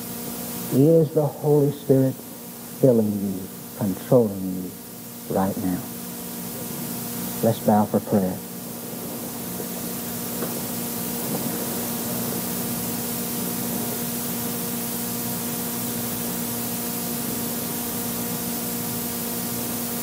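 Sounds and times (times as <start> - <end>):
low electrical hum: 0.0 - 20.0
recording hiss: 0.0 - 20.0.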